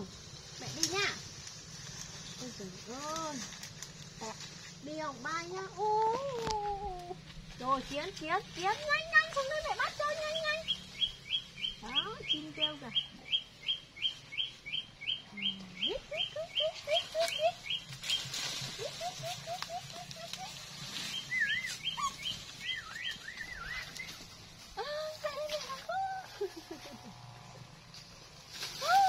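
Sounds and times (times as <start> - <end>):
birds chirping rapidly: 9.4 - 24.6.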